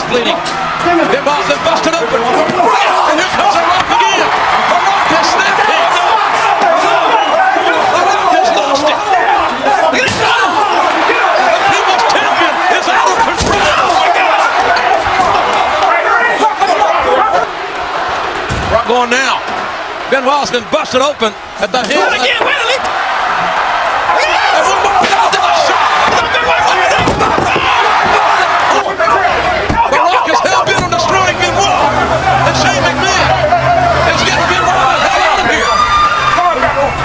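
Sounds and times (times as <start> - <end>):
men shouting: 0.0 - 37.0.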